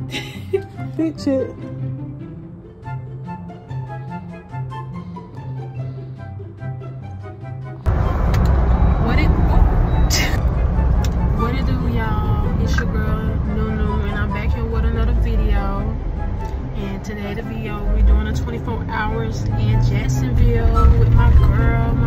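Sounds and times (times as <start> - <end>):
music: 0.0 - 22.0
woman talking: 0.5 - 1.6, 9.0 - 10.4, 11.3 - 16.0, 16.7 - 22.0
car cabin road rumble: 7.9 - 22.0.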